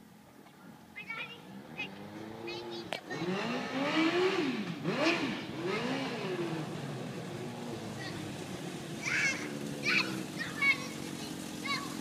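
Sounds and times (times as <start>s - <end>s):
motorcycle engine revving: 1.5s - 12.0s.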